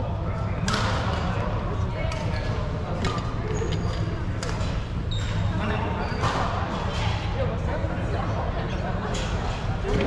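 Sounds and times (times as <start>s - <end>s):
low hum of sports hall: 0.0s - 10.0s
shoe squeaks on wooden court: 5.1s - 6.4s.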